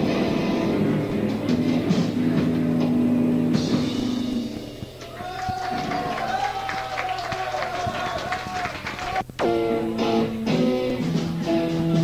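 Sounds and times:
electric guitar chords: 0.0 - 5.3, 8.8 - 12.0
crowd noise: 0.0 - 10.0
drum hits: 0.8 - 6.8.

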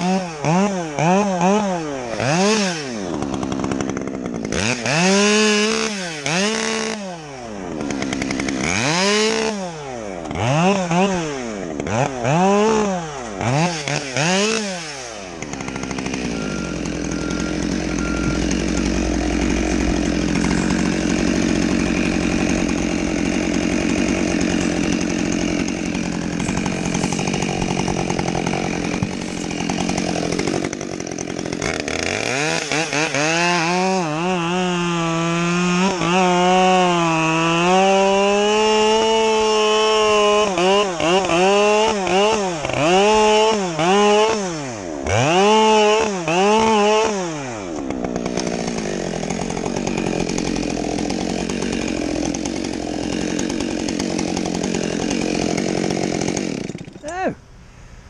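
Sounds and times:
chainsaw revving: 0.0 - 57.4.

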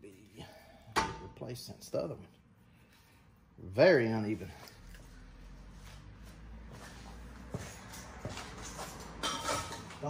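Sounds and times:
metal tools knocking and clinking: 9.0 - 10.0.

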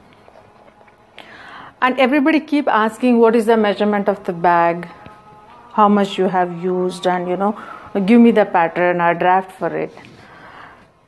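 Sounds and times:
soft breathy hiss: 1.2 - 1.8, 7.5 - 8.0, 9.9 - 11.0
woman speaking: 1.8 - 10.0.

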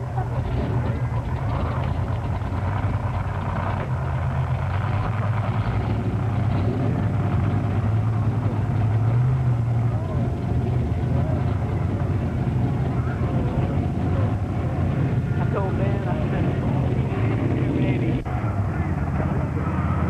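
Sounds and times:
people talking: 0.0 - 2.0, 9.9 - 14.4, 15.3 - 20.0
vehicle engine running: 0.0 - 20.0.

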